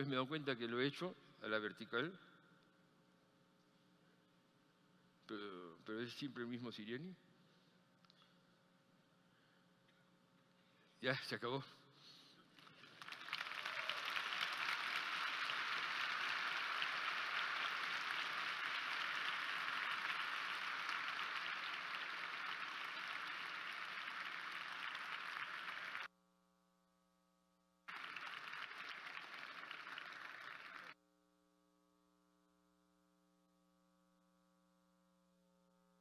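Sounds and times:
audience applauding: 0:12.5 - 0:26.1, 0:27.9 - 0:31.0.

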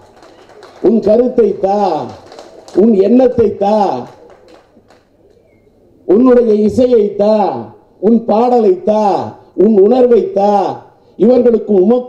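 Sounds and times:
man's amplified voice: 0:00.6 - 0:04.4, 0:06.1 - 0:12.0.

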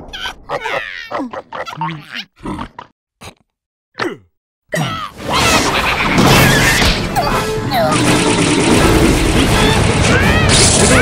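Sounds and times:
cartoon grunts and squeals: 0:00.0 - 0:02.8, 0:04.0 - 0:08.0, 0:09.5 - 0:11.0.

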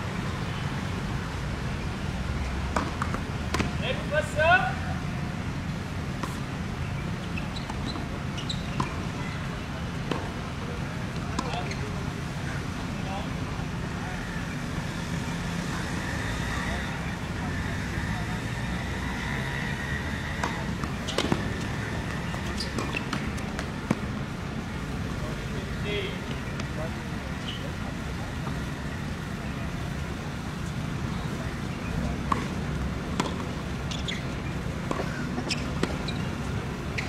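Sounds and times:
distant voices: 0:00.0 - 0:37.0
traffic rumble: 0:00.0 - 0:37.0
tennis ball knocks: 0:02.7 - 0:03.8, 0:10.1 - 0:10.3, 0:20.4 - 0:24.1, 0:33.1 - 0:33.5, 0:34.9 - 0:36.1.

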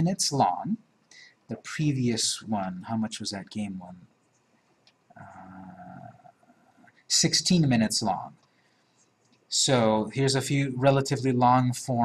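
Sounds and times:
man saying uhh: 0:05.2 - 0:06.4.

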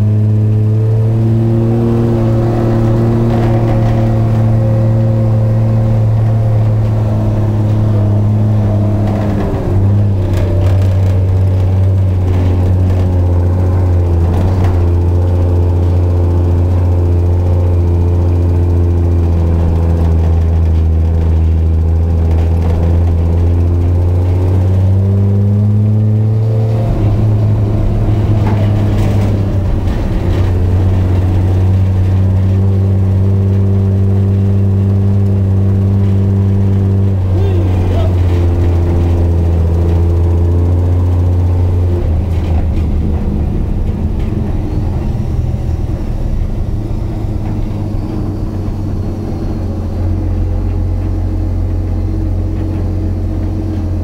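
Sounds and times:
petrol engine running: 0:00.0 - 0:54.0.

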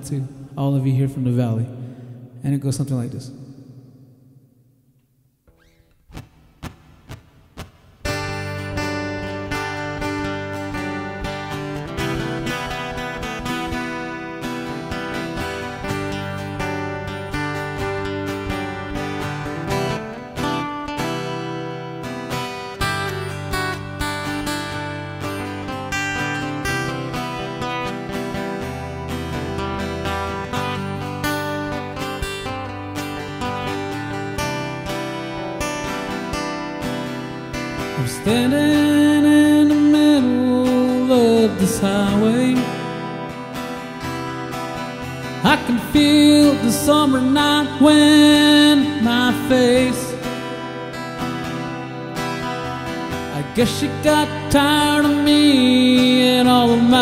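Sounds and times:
guitar strummed: 0:05.4 - 0:57.0.

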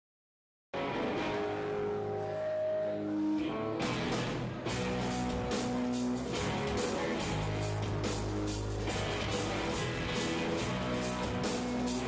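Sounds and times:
live rock band playing: 0:03.4 - 0:12.0.

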